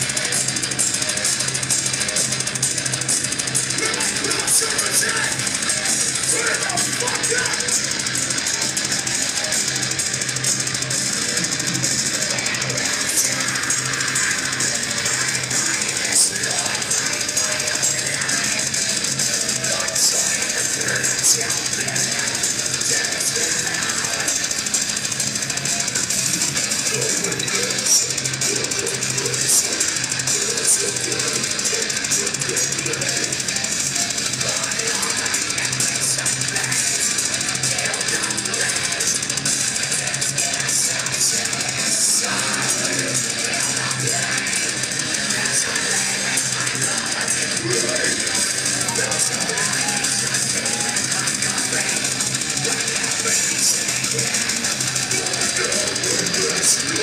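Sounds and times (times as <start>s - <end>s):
distorted electric guitars: 0.0s - 57.0s
drums: 0.0s - 57.0s.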